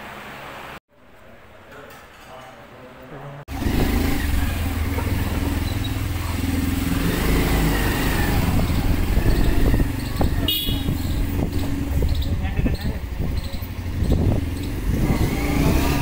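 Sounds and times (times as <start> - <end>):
motorbike engine running: 3.5 - 16.0
wind noise on microphone: 7.0 - 16.0.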